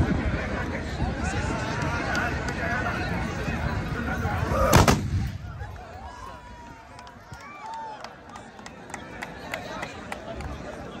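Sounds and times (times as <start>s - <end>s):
crowd voices and calls: 0.0s - 11.0s
musket volley cracks: 4.7s - 5.4s.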